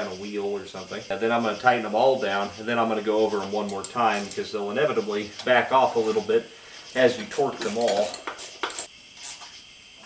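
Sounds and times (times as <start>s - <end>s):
wrench clinking on metal: 7.6s - 8.9s.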